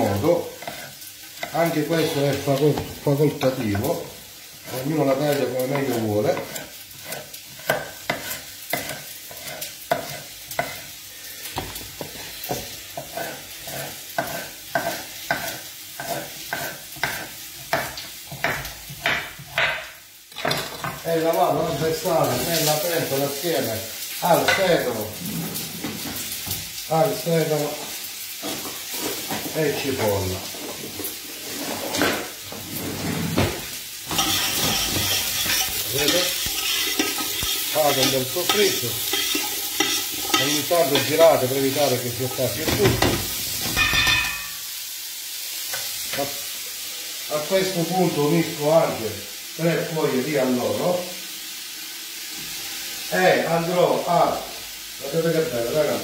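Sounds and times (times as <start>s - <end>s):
vegetables sizzling in hot oil: 0.0s - 56.0s.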